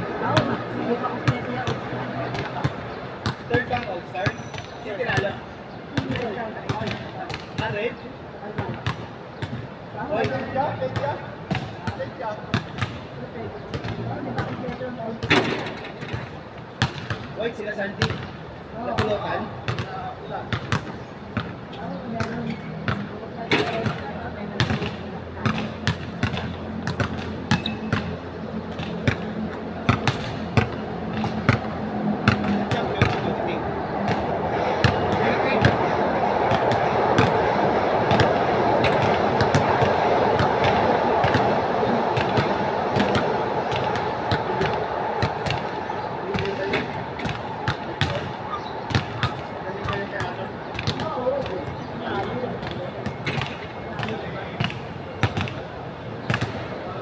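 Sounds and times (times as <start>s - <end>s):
basketballs bouncing on hard court: 18.9s - 33.3s, 34.0s - 35.9s, 36.5s - 37.4s, 38.1s - 41.6s, 42.2s - 45.7s, 46.3s - 55.6s, 56.2s - 56.6s
steady noise: 28.6s - 50.7s.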